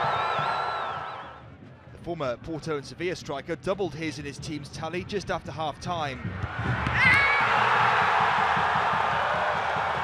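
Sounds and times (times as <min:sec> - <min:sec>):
stadium crowd cheering: 0:00.0 - 0:01.4, 0:06.3 - 0:10.0.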